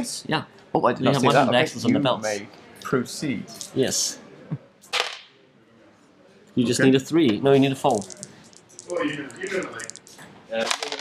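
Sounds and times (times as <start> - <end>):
dice clattering on hard board: 7.8 - 11.0.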